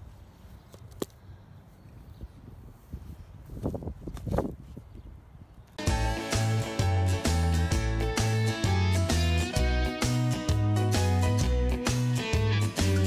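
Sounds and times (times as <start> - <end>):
guitar music: 5.8 - 13.0.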